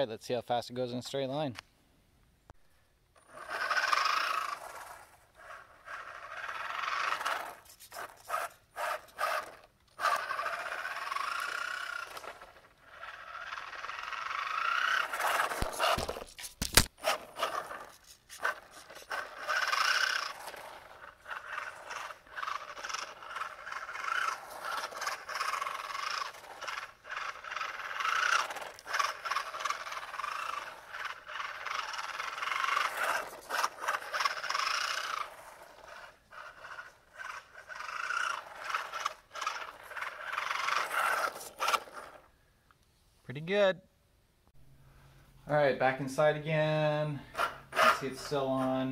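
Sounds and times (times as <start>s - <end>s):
rc car motor whining and rattling: 3.2s - 42.3s, 47.2s - 48.9s.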